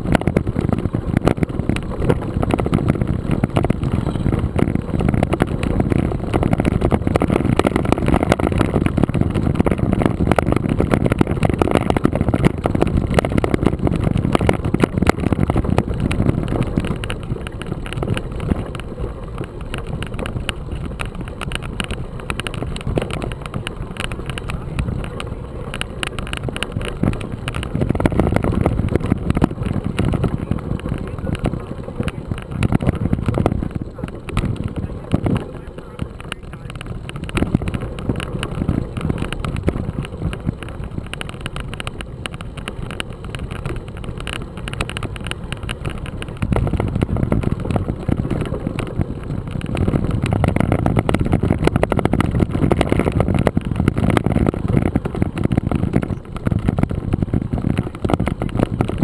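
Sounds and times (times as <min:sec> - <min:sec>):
bike tyres crunching on gravel: 0:00.0 - 0:59.0
wind rumble on microphone: 0:00.0 - 0:59.0.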